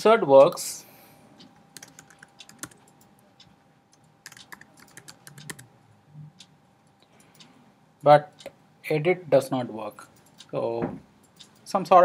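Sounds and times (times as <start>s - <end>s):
typing on computer keyboard: 1.8s - 3.0s, 4.2s - 5.7s.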